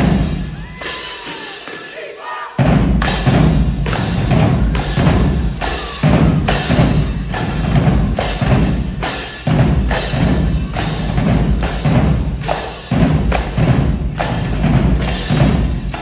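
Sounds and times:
marching drumline playing: 0:00.0 - 0:16.0.

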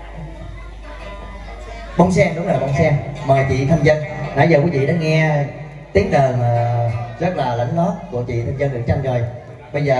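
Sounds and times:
soft traditional band music: 0:00.0 - 0:09.9.

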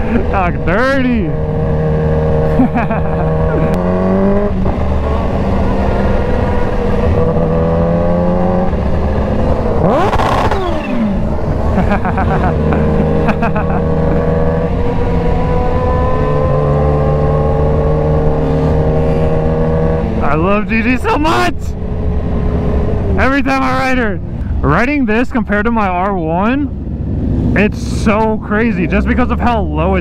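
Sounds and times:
motorcycle engine cruising: 0:00.0 - 0:30.0.

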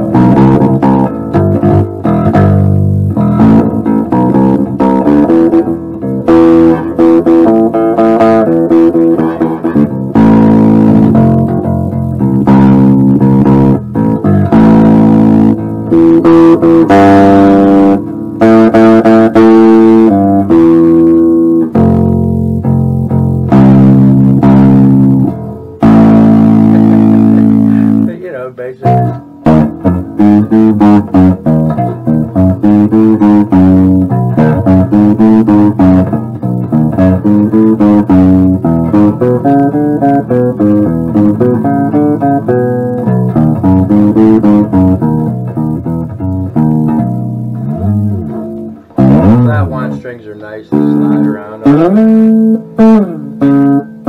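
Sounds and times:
distorted electric bass notes: 0:00.0 - 0:54.0.

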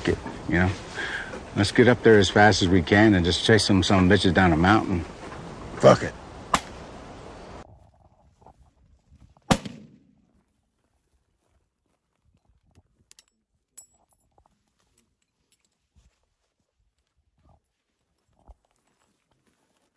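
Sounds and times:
rifle shot: 0:09.5 - 0:10.2
soft rustles: 0:10.2 - 0:19.9.

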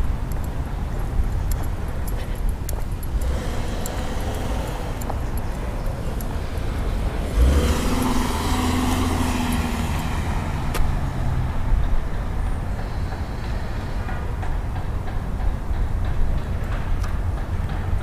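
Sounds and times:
vehicle driving past: 0:03.2 - 0:14.0.

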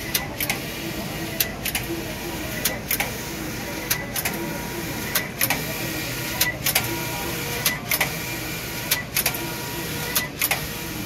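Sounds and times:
sharp machine clicks: 0:01.4 - 0:03.2, 0:03.8 - 0:04.4, 0:05.0 - 0:05.7, 0:06.3 - 0:08.3, 0:08.9 - 0:09.4, 0:10.1 - 0:10.8.

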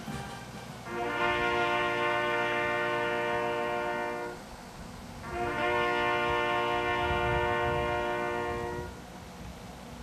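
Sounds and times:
fanfare trumpets holding a note: 0:00.1 - 0:04.4, 0:05.3 - 0:08.9.

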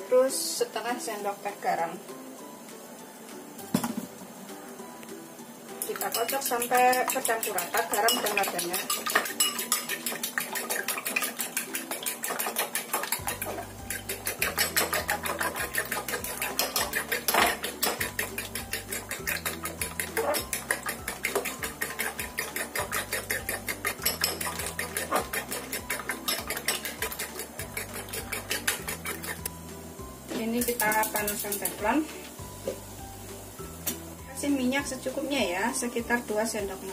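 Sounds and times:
utensil beating eggs in bowl: 0:05.8 - 0:29.5, 0:30.4 - 0:32.0.

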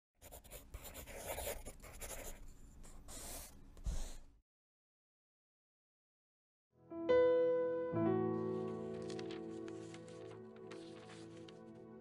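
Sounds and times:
writing on paper: 0:00.2 - 0:04.3.

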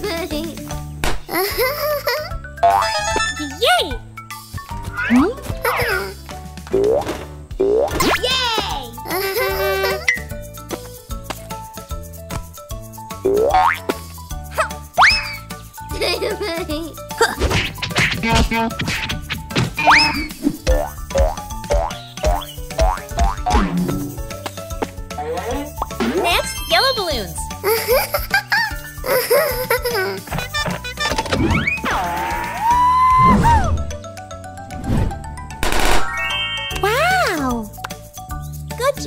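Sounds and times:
children's background music: 0:00.0 - 0:39.0.

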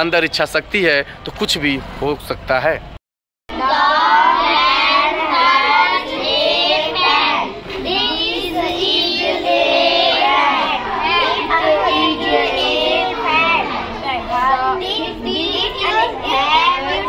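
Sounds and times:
children singing together: 0:03.5 - 0:17.0.

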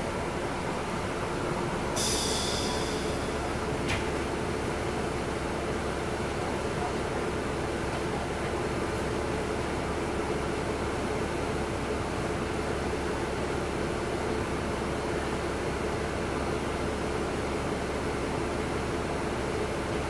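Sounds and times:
diesel bus engine idling: 0:00.0 - 0:20.0.

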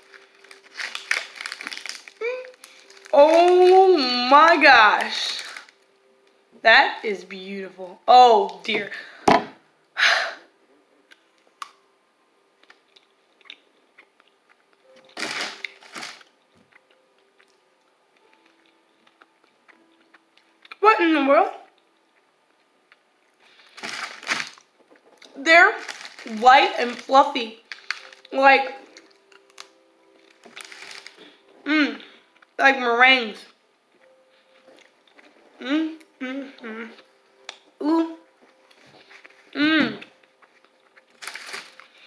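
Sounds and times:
person chewing cookie: 0:12.6 - 0:17.6, 0:18.2 - 0:20.8.

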